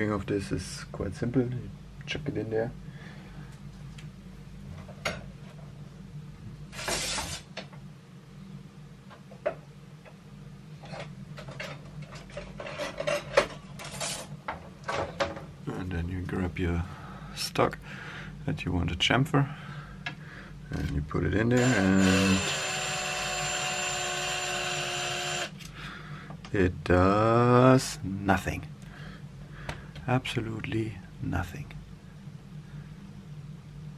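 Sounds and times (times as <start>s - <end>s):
steady low hum: 0.0s - 33.9s
power drill spinning: 6.7s - 7.5s, 21.6s - 25.5s.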